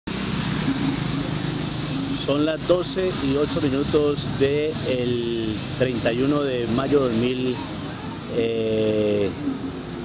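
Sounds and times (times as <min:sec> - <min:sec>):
traffic noise: 0:00.0 - 0:10.0
vehicle engine running: 0:00.1 - 0:10.0.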